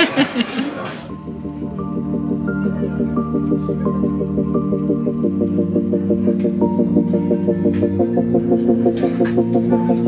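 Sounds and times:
pulsing pattern of notes: 1.1s - 10.0s.

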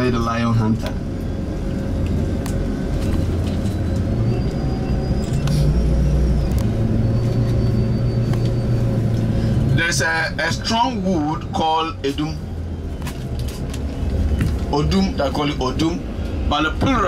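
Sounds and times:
vehicle engine and road rumble: 0.0s - 17.0s.

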